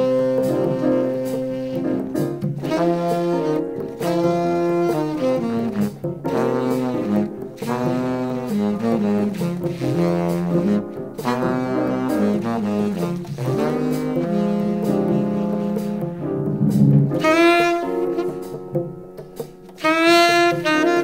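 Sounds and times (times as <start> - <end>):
saxophone and brass horns: 0.0 - 18.9, 19.7 - 21.0
walking bass line: 0.0 - 19.0
bright high horn note: 17.1 - 18.5.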